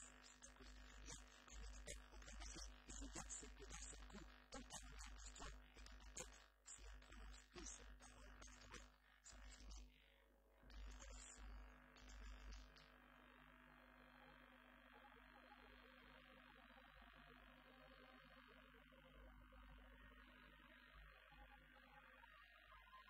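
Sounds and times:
cassette hiss and hum: 0.0 - 10.0, 10.7 - 23.0.

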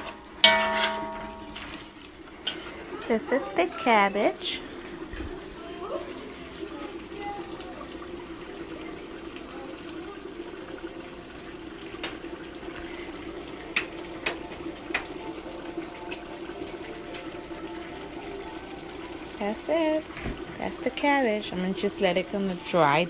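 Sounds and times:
pot simmering with bubbling hiss: 0.0 - 23.0.

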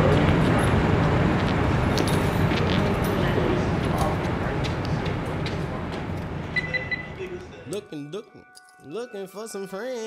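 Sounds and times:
motor vehicle rumble: 0.0 - 7.3.

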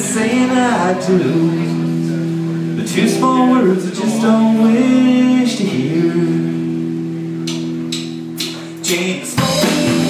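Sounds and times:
amplified guitars ringing chord: 0.0 - 10.0.

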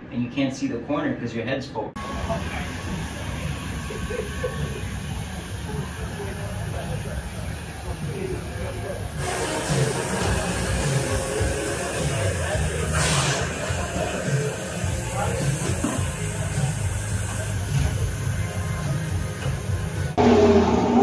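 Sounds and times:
burst of hiss: 2.0 - 20.2
indistinct crew voices: 2.0 - 21.0.

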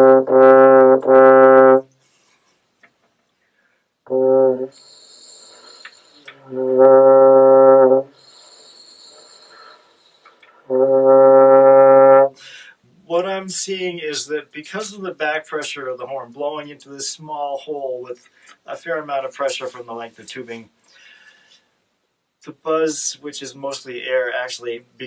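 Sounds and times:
french horn low note: 4.1 - 4.8, 6.2 - 8.2, 10.7 - 12.3
breathy air noise: 8.1 - 10.7, 12.3 - 12.9.

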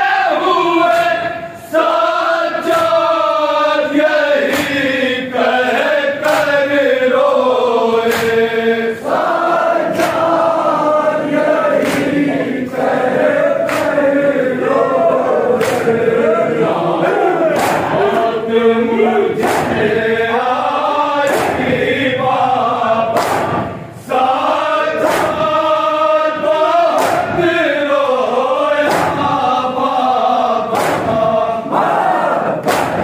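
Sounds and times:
men chanting together: 0.0 - 33.0.

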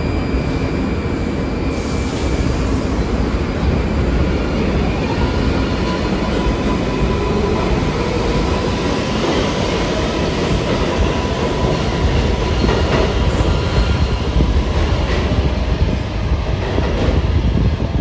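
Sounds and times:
subway train running on rails: 0.0 - 18.0.

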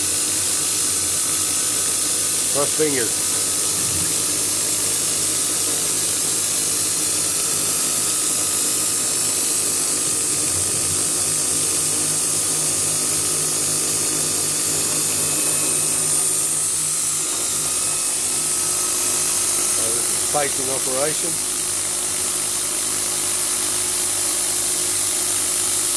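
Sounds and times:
spindle motor whine: 0.0 - 25.9
low hum: 3.7 - 4.4.

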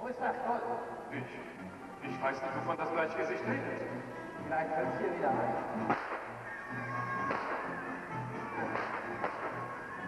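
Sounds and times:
background music: 0.0 - 10.0
blank gunshots: 5.8 - 6.4, 7.2 - 7.9, 8.6 - 9.8.

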